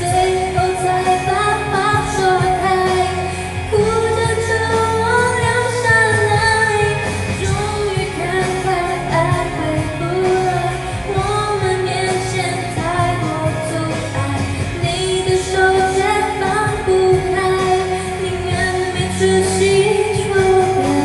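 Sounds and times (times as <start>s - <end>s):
instrumental backing track: 0.0s - 21.0s
woman singing pop song: 0.0s - 21.0s.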